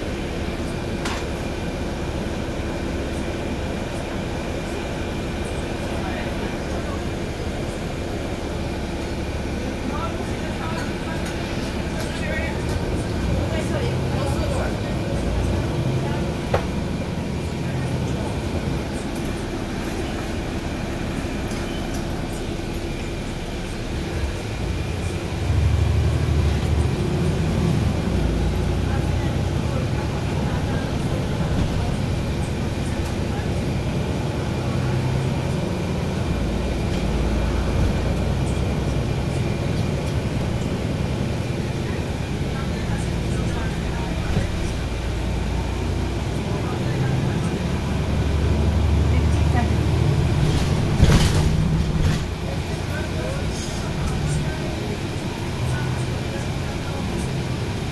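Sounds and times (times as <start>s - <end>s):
bus engine drone: 0.0s - 57.9s.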